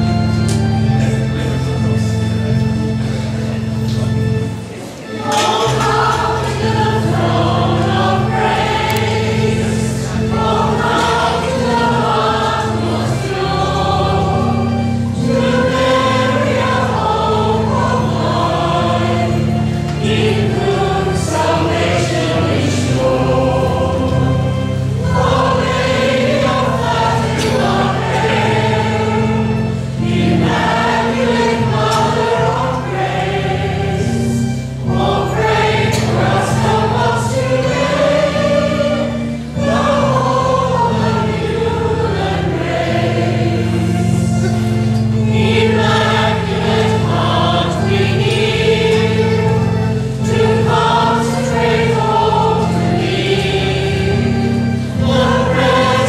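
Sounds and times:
choir and congregation singing: 0.0 - 56.0
organ accompaniment: 0.0 - 56.0.

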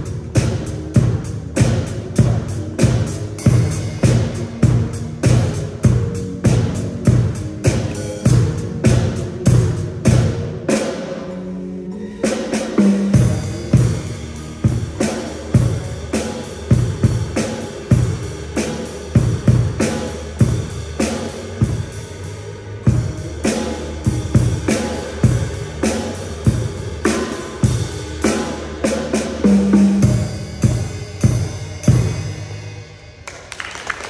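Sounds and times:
bass drum: 0.0 - 11.0, 12.8 - 22.0, 22.8 - 32.4
cymbals ringing: 0.0 - 33.3.

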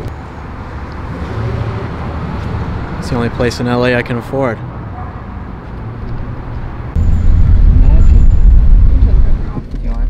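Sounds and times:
car driving with deep rumble: 0.0 - 3.7, 4.6 - 10.0
quiet street noise: 0.0 - 10.0.

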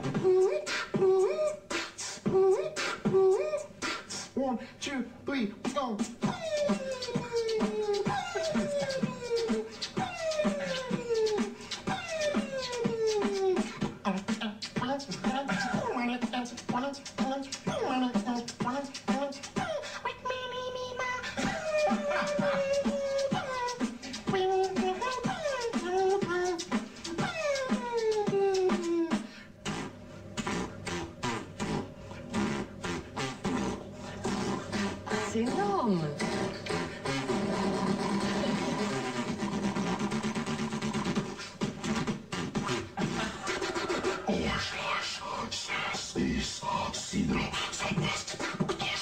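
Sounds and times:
beatboxing percussive beats: 0.0 - 4.4, 5.4 - 49.0
sliding vocal tone: 0.0 - 49.0
beatbox clicks and snare hits: 36.2 - 44.0.

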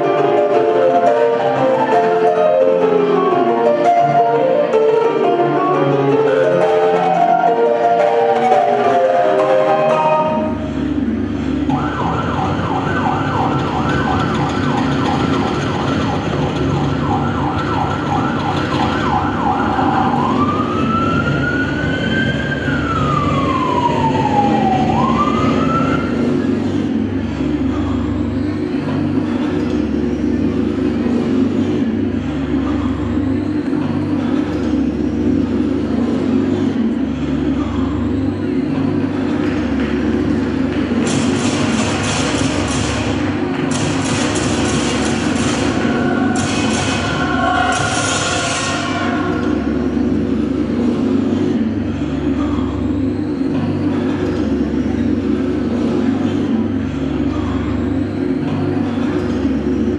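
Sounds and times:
low engine rumble: 0.0 - 59.9
siren yelp and wail: 11.6 - 26.3, 45.8 - 50.0.

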